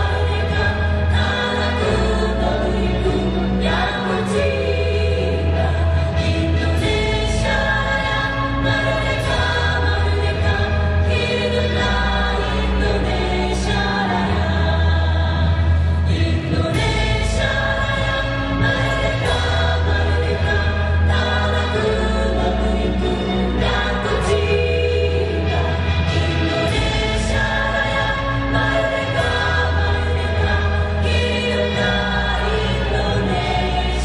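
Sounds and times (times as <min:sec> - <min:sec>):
bass line: 0:00.0 - 0:34.0
choir singing with accompaniment: 0:00.0 - 0:34.0.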